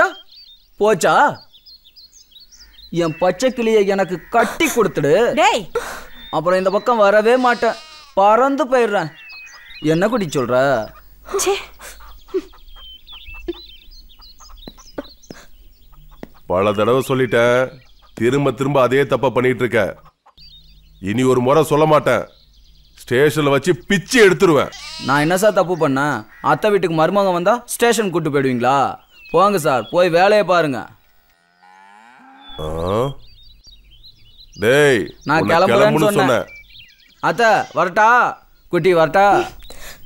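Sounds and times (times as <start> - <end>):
birds chirping: 0.0 - 40.0
cow mooing: 7.4 - 8.2, 31.1 - 33.2.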